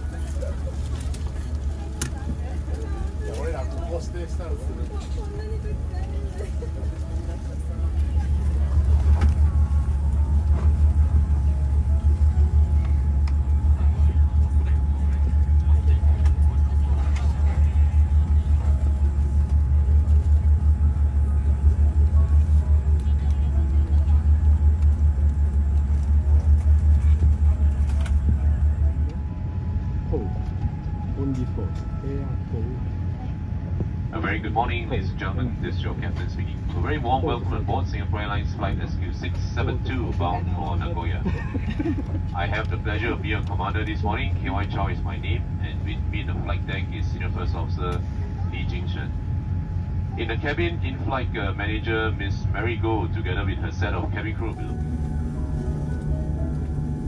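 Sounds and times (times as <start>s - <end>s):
airliner cabin rumble: 0.0s - 57.0s.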